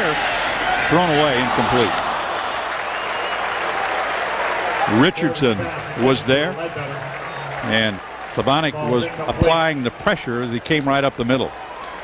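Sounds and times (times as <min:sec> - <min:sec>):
stadium crowd cheering and applauding: 0:00.0 - 0:12.0.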